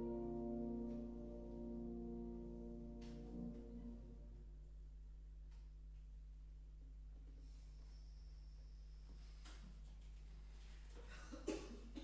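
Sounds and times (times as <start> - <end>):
violin and piano chord: 0.0 - 4.5.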